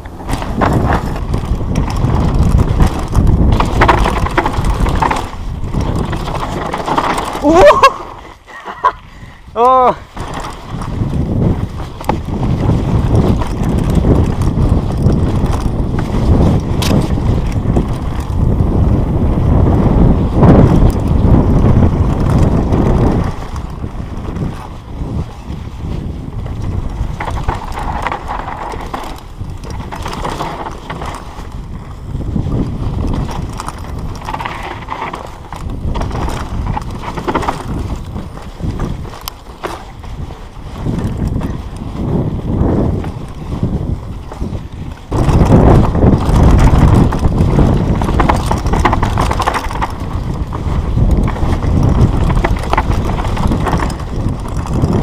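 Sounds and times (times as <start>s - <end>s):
bike tyres clattering over ground: 0.0s - 55.0s
rushing wind noise: 0.0s - 55.0s.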